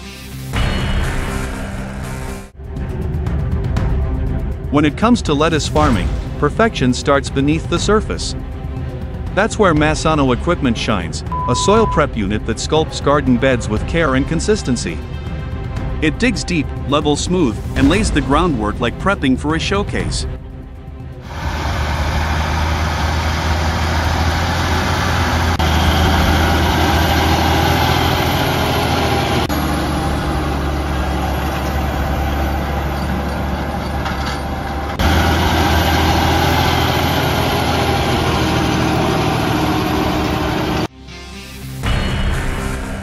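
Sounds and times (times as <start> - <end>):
tractor engine running: 21.2 - 40.9.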